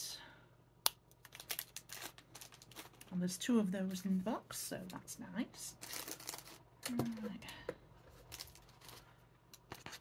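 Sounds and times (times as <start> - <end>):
plastic wrapper rustling: 1.1 - 3.4, 5.7 - 7.0, 8.1 - 10.0.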